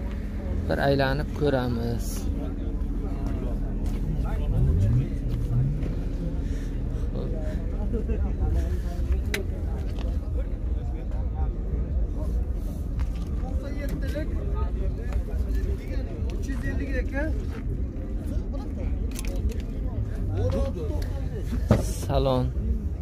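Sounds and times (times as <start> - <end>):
people talking in background: 0.0 - 23.0
steady low rumble: 0.0 - 23.0.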